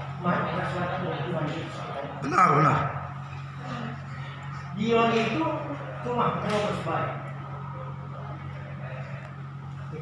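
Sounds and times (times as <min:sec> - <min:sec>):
faint indistinct voices: 0:00.0 - 0:10.0
steady low room hum: 0:00.0 - 0:10.0.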